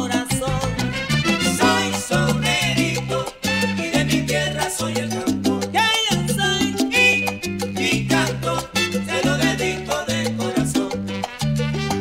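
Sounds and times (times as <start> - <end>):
instrumental salsa music: 0.0 - 12.0.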